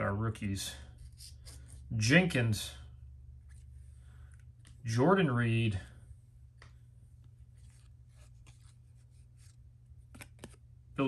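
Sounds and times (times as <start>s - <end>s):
low steady hum: 0.0s - 11.0s
cardboard cards being flipped: 6.5s - 10.7s.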